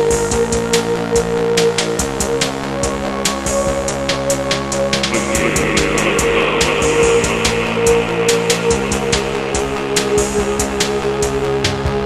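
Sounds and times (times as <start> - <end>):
ticking beat: 5.1 - 11.3
hissing synth noise: 5.1 - 11.6
electronic synth music: 5.1 - 11.7.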